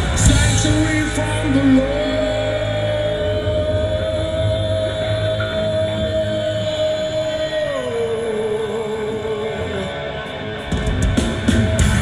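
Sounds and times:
rock band drone: 0.0s - 12.0s.

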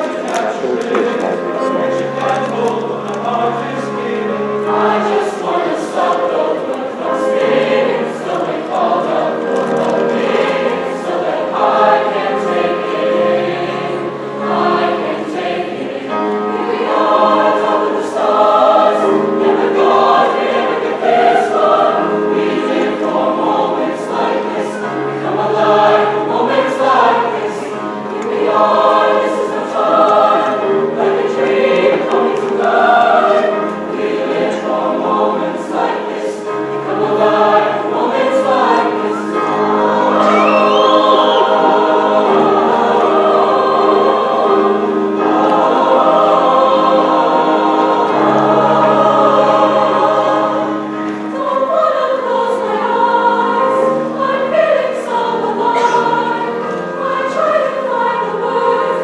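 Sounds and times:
chorus singing pop song: 0.0s - 59.0s
piano accompaniment: 0.0s - 59.0s.

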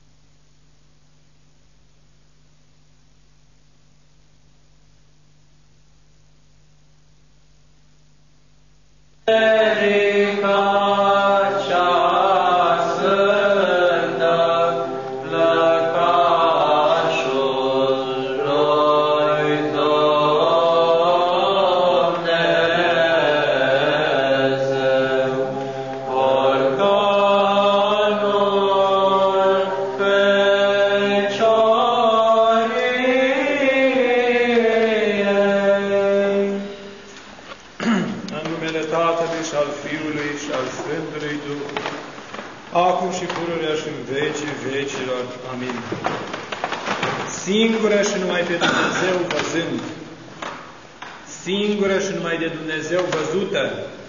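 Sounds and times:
voices chanting slow melody: 9.2s - 42.0s
held drone note: 24.8s - 27.6s.

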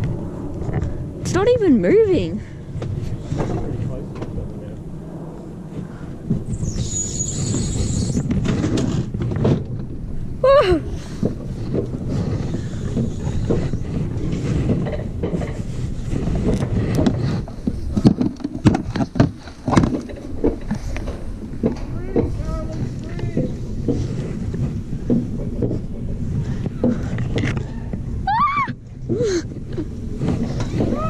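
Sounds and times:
sled wheels rumbling on rails: 0.0s - 31.0s
wind buffeting microphone: 0.0s - 31.0s
sharp clicks and knocks: 11.2s - 27.7s.

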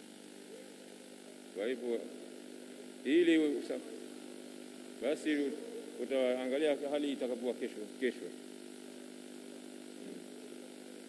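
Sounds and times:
steady hum: 0.0s - 11.0s.

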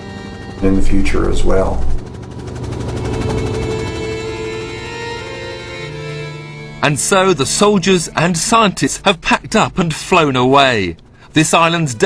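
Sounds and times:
helicopter rotor chopping: 0.0s - 12.0s
low engine rumble: 0.0s - 12.0s.

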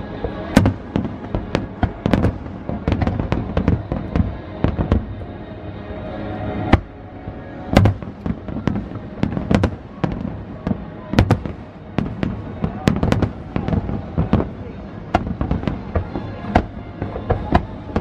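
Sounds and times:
fireworks bursting: 0.1s - 5.2s, 7.7s - 18.0s.

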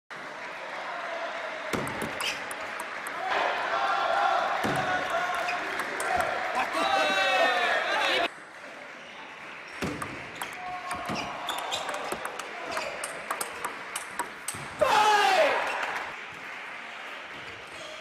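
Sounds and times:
table tennis ball clicking: 1.8s - 3.2s, 4.7s - 6.4s, 9.8s - 14.7s.

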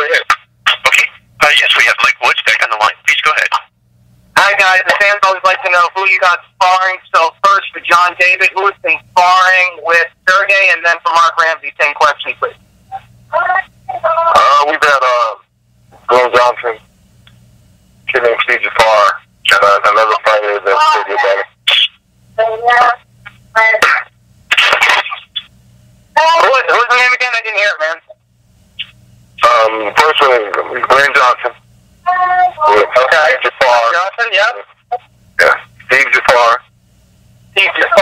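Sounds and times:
person talking over telephone: 0.0s - 3.7s, 4.4s - 15.4s, 16.0s - 16.8s, 18.1s - 25.5s, 26.2s - 28.2s, 28.8s - 36.7s, 37.6s - 38.0s
faint low hum: 0.0s - 38.0s.

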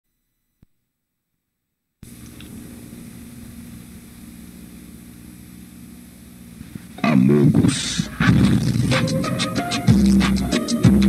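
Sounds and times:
videotape hum with hiss: 2.0s - 11.0s.

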